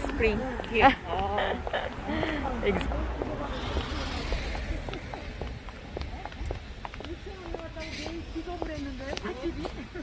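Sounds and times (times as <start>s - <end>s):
footsteps on pavement: 0.0s - 10.0s.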